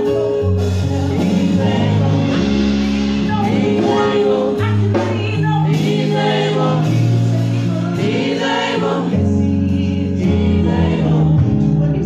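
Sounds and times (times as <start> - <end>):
woman singing lead: 0.0 - 11.7
backing singers: 0.0 - 12.0
keyboard with bass notes: 0.0 - 12.0.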